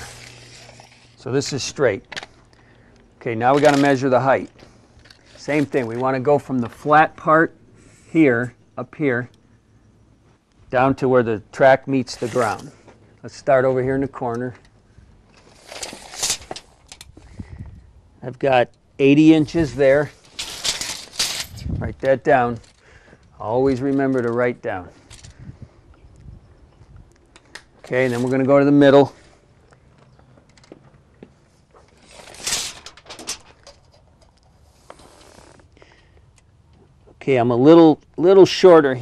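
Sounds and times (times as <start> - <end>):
tape measure rasping scrape: 0.0 - 1.2, 12.1 - 12.8, 15.4 - 17.0, 27.8 - 28.4, 31.9 - 33.4, 34.7 - 35.7
rustle: 0.0 - 7.1, 14.6 - 17.8, 19.3 - 23.0, 23.6 - 36.1.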